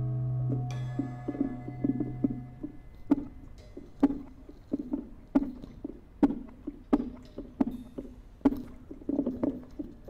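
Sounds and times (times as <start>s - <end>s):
drum kit hits: 0.0s - 3.4s.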